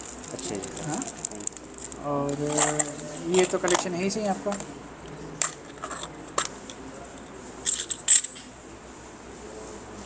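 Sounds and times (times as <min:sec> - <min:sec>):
metal coins clinking: 0:07.6 - 0:08.4.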